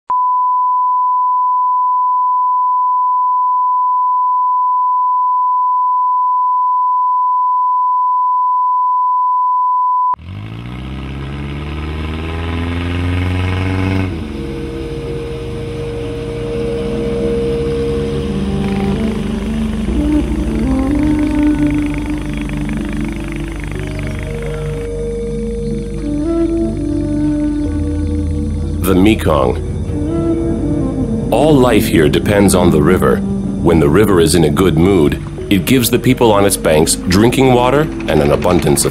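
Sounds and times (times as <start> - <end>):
soundtrack music of sustained tones: 13.6 - 38.9
steady test tone: 13.8 - 38.9.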